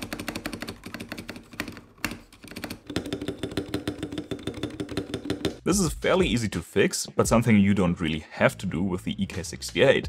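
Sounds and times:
fast typing on mechanical keyboard: 0.0s - 5.6s.

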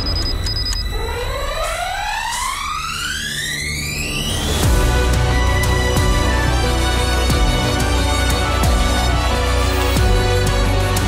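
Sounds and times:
high beeps: 0.0s - 1.8s
cinematic electronic music: 0.0s - 11.0s
rising synth sweep: 0.9s - 11.0s.

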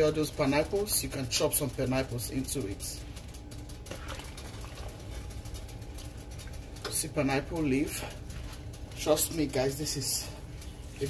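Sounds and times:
pot bubbling at the boil: 0.0s - 11.0s.

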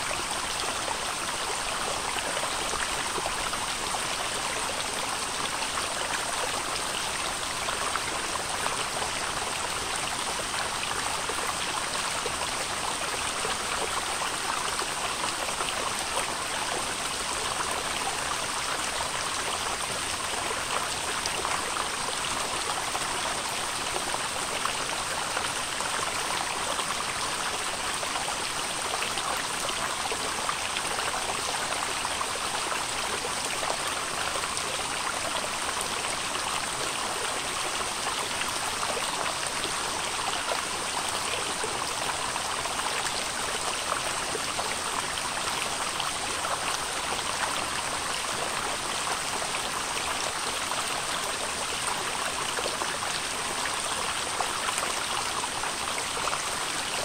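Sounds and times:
stream flowing over rocks: 0.0s - 57.0s.

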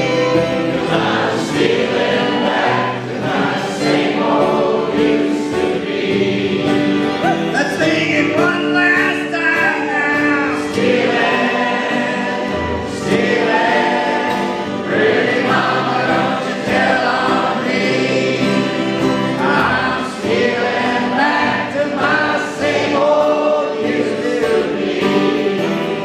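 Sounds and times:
acoustic guitar: 0.0s - 26.0s
crowd singing along: 0.0s - 26.0s
fiddle: 0.0s - 26.0s.

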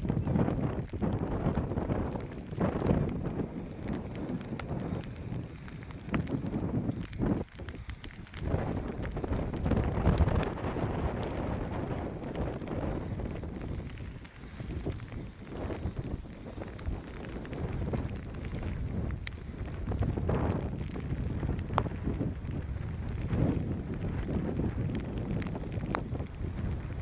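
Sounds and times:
strong wind buffeting microphone: 0.0s - 27.0s.

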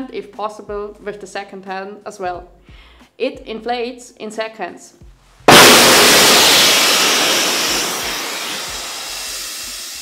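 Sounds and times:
airbag inflating with rushing hiss: 5.5s - 10.0s.

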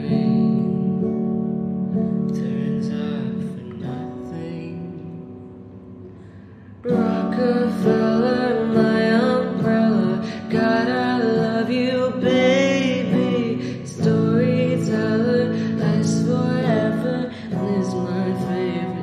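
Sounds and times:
person singing slow melody: 1.9s - 19.0s.

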